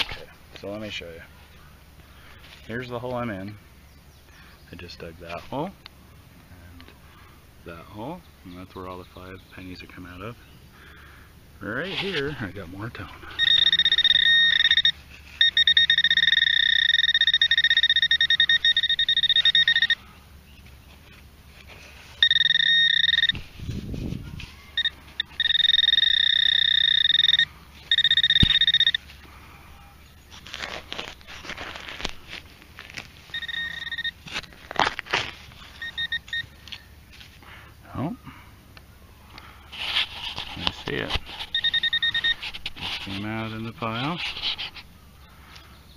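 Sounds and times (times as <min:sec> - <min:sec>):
dirt and grass scraping: 0:11.7 - 0:13.4, 0:20.5 - 0:22.3, 0:23.0 - 0:25.4, 0:27.7 - 0:37.6, 0:39.6 - 0:44.9
metal detector high alarm tone: 0:13.2 - 0:20.1, 0:22.2 - 0:23.5, 0:24.8 - 0:29.1, 0:33.3 - 0:34.3, 0:35.8 - 0:36.8, 0:41.4 - 0:42.5.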